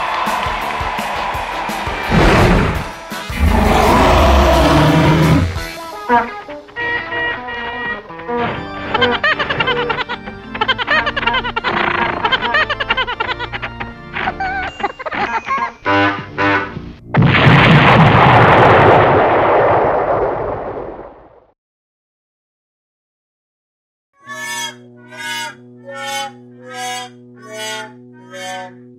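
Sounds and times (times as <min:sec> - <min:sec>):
background music: 0:00.0 - 0:17.1
explosion rumble: 0:02.1 - 0:04.0, 0:17.1 - 0:21.4
deep rumbling sound effect: 0:02.1 - 0:05.5.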